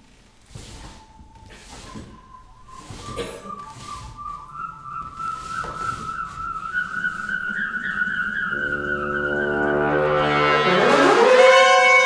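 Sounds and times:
high thin whistling tone: 0:00.5 - 0:11.2
wind instruments low chord: 0:07.7 - 0:12.0.

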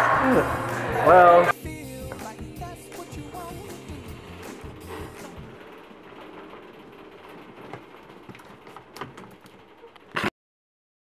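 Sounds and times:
mechanical shelving noise: 0:00.0 - 0:10.3
crank and gear clicks: 0:04.4 - 0:10.3.

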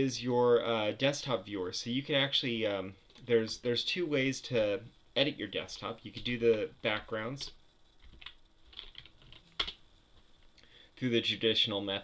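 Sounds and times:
keyboard and mouse clicks: 0:07.4 - 0:09.8.

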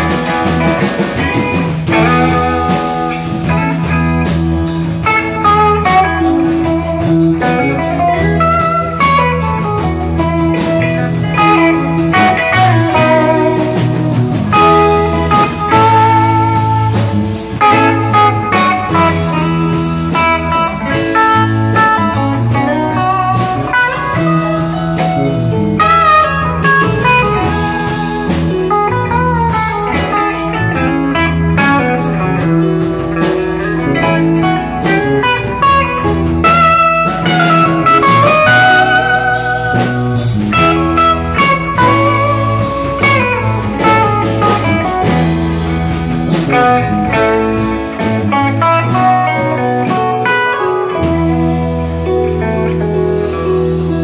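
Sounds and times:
drums: 0:00.0 - 0:54.0
electric guitar lead lines: 0:00.0 - 0:54.0
rock band playing live: 0:00.0 - 0:54.0.

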